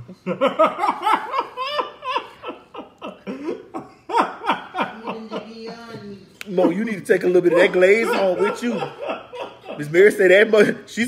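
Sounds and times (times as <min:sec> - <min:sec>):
person laughing: 0:06.6 - 0:10.8.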